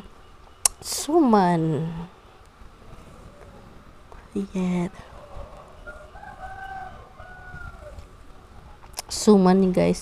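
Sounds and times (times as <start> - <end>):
rooster crowing faintly: 4.9 - 8.5.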